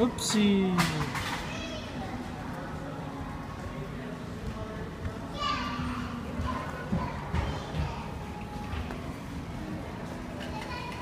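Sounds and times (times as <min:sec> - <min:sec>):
young children's voices: 0:01.4 - 0:02.2.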